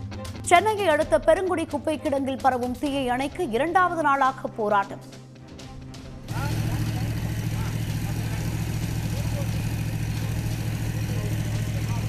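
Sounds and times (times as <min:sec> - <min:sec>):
engine running steadily: 0:06.2 - 0:12.0.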